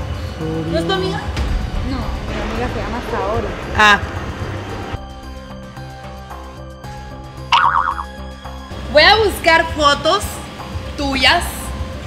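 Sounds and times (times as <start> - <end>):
cartoon boing sound effect: 7.5 - 8.2.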